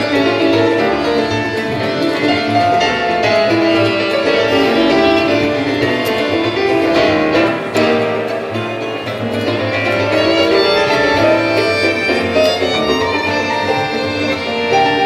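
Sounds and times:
grand piano: 0:00.0 - 0:15.0
violin melody: 0:00.0 - 0:15.0.

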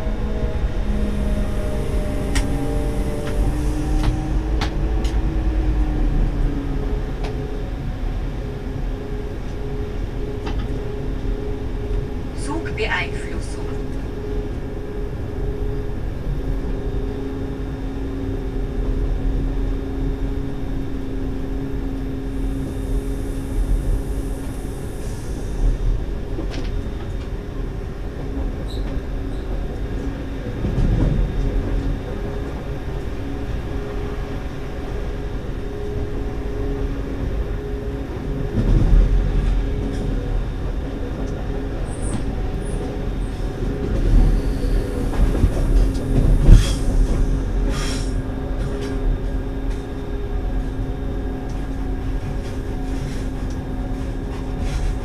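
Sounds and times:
electric train on track: 0:00.0 - 0:55.0.

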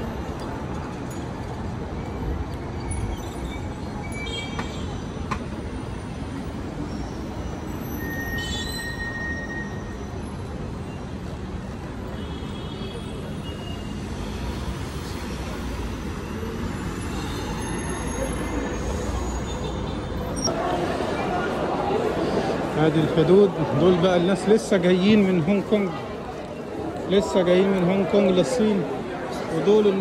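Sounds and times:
city traffic rumble: 0:00.0 - 0:30.0.

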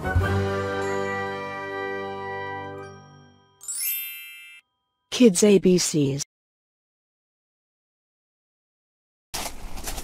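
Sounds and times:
chime-like jingle chord: 0:00.2 - 0:05.1
rising sparkle of high tones: 0:02.8 - 0:05.0.

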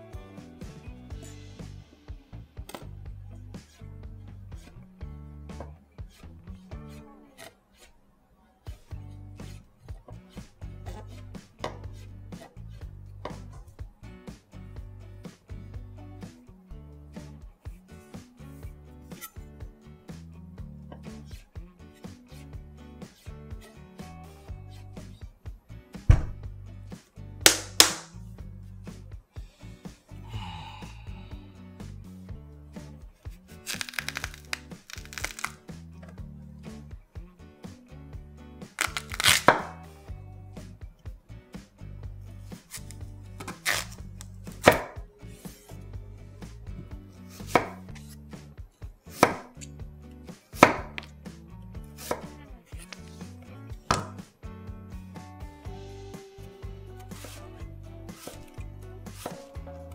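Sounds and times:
knife cutting on wooden board: 0:08.8 - 0:12.6, 0:38.8 - 0:39.8, 0:42.5 - 0:45.8, 0:46.8 - 0:48.5, 0:49.1 - 0:49.7, 0:50.6 - 0:51.1, 0:51.8 - 0:54.2, 0:57.0 - 0:57.5, 0:58.1 - 0:59.5
hand slapping radish: 0:27.0 - 0:28.2, 0:33.6 - 0:36.1, 0:38.6 - 0:39.9, 0:42.5 - 0:45.7, 0:47.3 - 0:48.5, 0:49.1 - 0:49.8, 0:50.4 - 0:51.4, 0:52.0 - 0:54.4, 0:57.0 - 0:57.4, 0:58.1 - 0:59.8
radish set down on cutting board: 0:38.8 - 0:39.8, 0:53.9 - 0:54.2.

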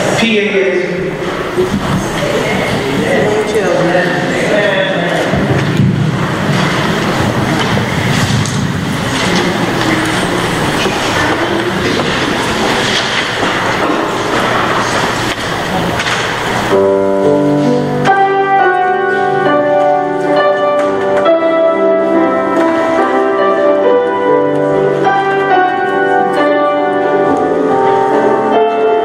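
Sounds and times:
loud rushing noise: 0:00.0 - 0:20.0
piano playing sustained chords: 0:00.0 - 0:29.0
high-pitched human voices: 0:06.8 - 0:13.4.

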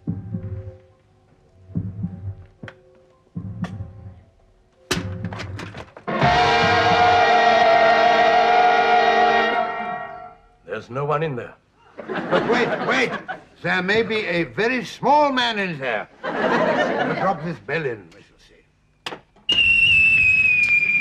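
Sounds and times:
hunting horn blast: 0:06.1 - 0:10.6.

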